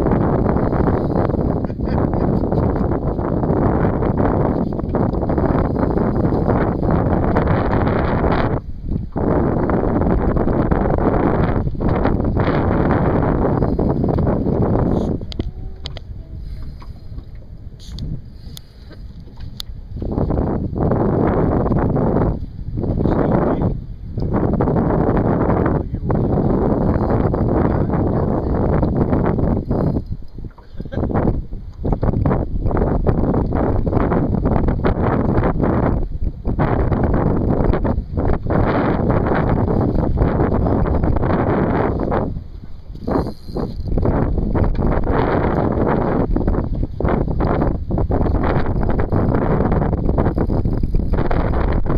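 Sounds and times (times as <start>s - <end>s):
wind buffeting microphone: 0.0s - 51.9s.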